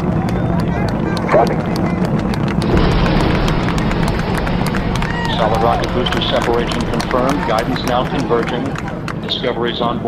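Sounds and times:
rocket exhaust rumbling and crackling: 0.0s - 10.0s
radio voice: 1.2s - 1.8s.

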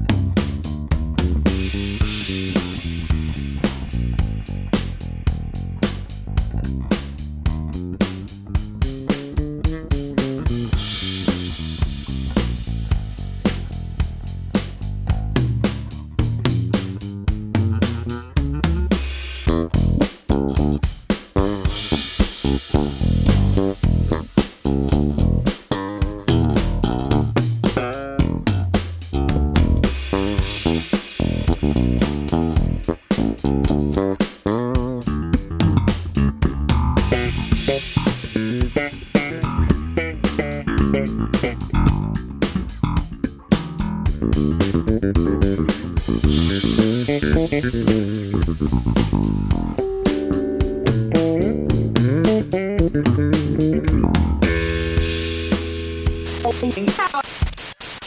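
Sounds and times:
electric bass quick plucked notes: 0.0s - 56.8s.

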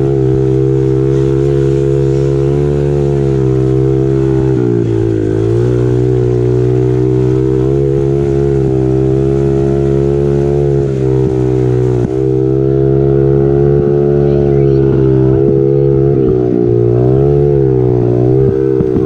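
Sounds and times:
dirt bike engine running: 0.0s - 19.0s.

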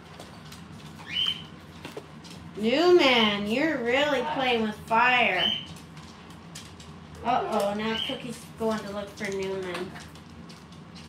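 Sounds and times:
low room hum: 0.0s - 11.0s
parrot whistled call: 1.0s - 1.5s.

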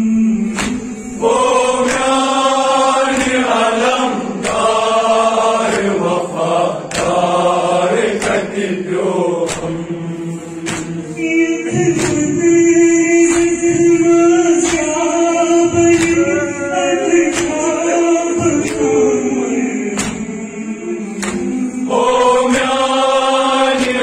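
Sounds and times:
group of voices chanting: 0.0s - 24.0s
sharp beats: 0.0s - 24.0s.

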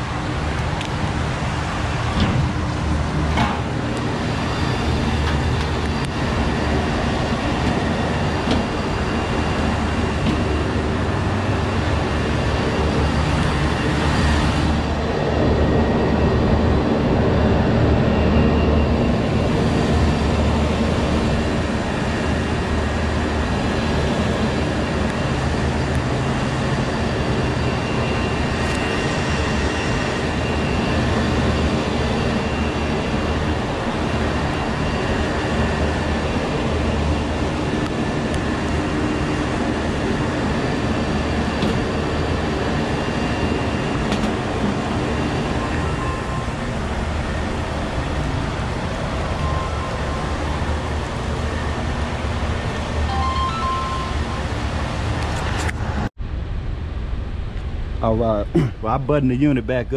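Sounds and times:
air conditioner humming and whirring: 56.2s - 59.9s.

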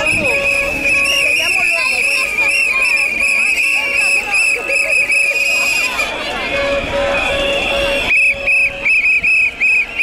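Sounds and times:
whistle short high blasts: 0.0s - 6.1s, 7.6s - 10.0s.

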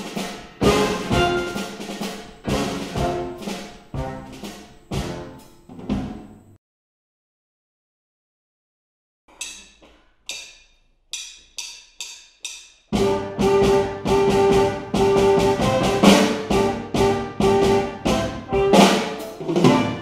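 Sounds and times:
band playing upbeat dance music: 0.0s - 5.2s.

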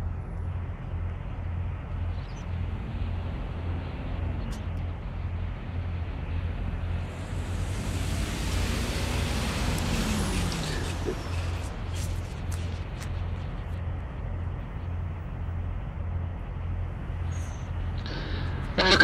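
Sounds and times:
road traffic: 0.0s - 19.0s
truck driving past: 0.6s - 19.0s.

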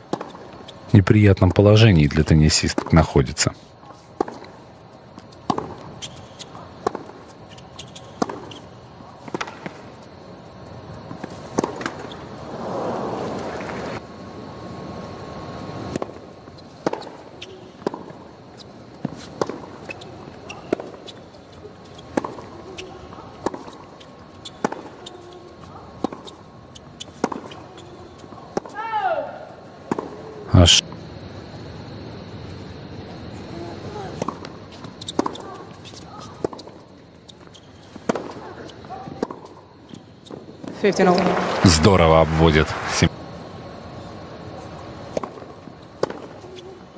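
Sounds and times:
tennis ball bouncing: 4.2s - 8.6s, 9.2s - 9.8s, 11.1s - 12.2s, 15.9s - 18.2s, 19.0s - 28.8s, 29.8s - 30.2s, 34.2s - 41.8s, 45.1s - 46.7s
rackets striking tennis ball: 5.2s - 8.6s, 9.3s - 9.8s, 19.0s - 25.4s, 26.0s - 28.8s, 34.2s - 36.8s, 37.4s - 39.6s
crowd noise: 40.9s - 43.2s.

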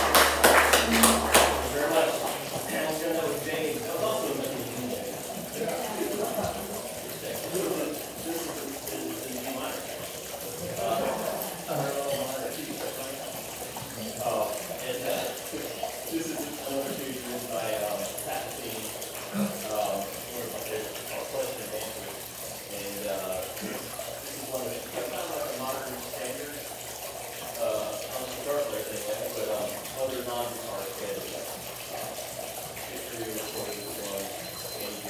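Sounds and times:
indistinct voices talking: 0.0s - 9.8s.

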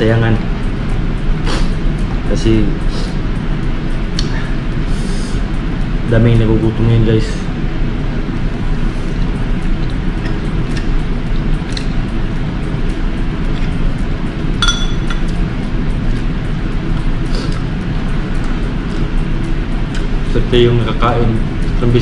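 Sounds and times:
fork clinking against bowl: 14.6s - 15.4s.

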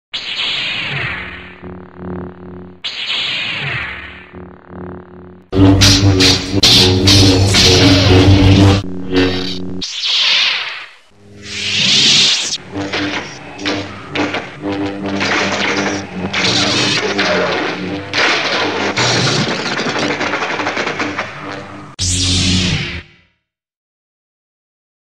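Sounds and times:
lightsaber hum and swings: 0.2s - 23.0s.

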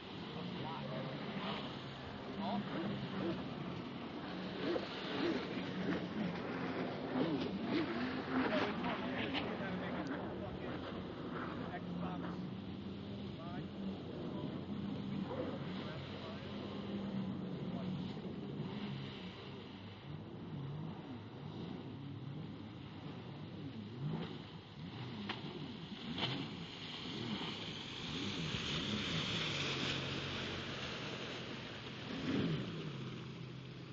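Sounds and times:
people talking: 0.0s - 3.6s, 7.8s - 18.5s
jet ski engine running: 0.0s - 33.9s.

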